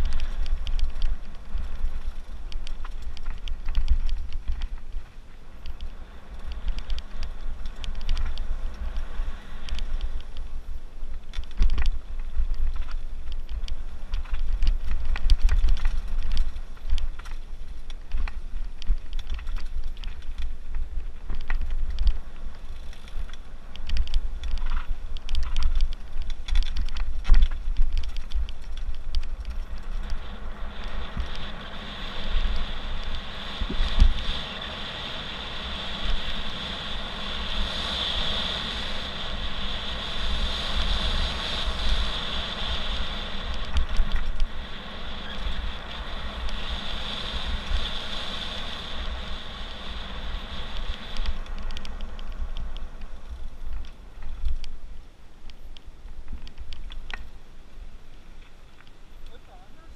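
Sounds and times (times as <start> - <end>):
tyres on loose gravel: 0.0 - 59.9
wind rumbling on microphone: 0.0 - 59.9
bike knocks and rattles: 11.1 - 30.1
steady high buzz: 29.2 - 54.2.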